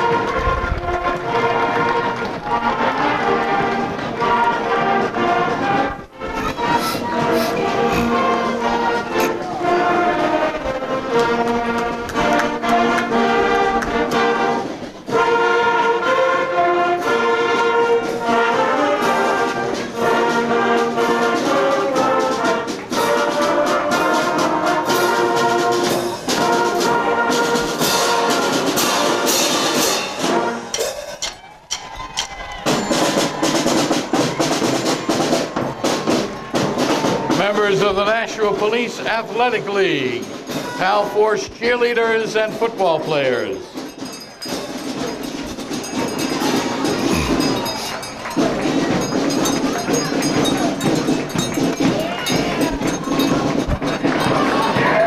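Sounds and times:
flute and brass melody: 0.0s - 30.9s, 32.6s - 55.0s
marching band playing: 0.0s - 55.0s
marching drums: 0.0s - 55.0s.

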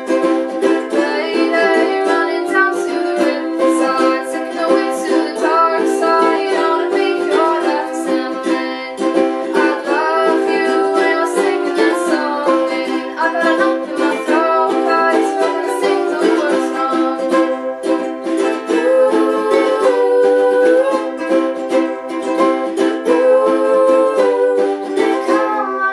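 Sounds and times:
person singing softly: 0.0s - 25.9s
ukuleles strumming: 0.0s - 25.9s.

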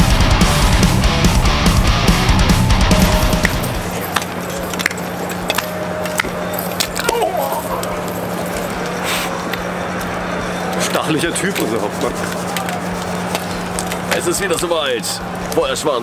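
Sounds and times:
heavy metal music: 0.0s - 4.1s
steady low hum: 0.0s - 15.6s
man shouting: 7.0s - 8.1s.

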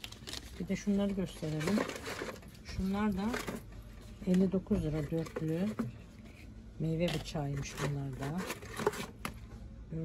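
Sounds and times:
packaging rustling: 0.0s - 6.5s, 7.1s - 9.4s.

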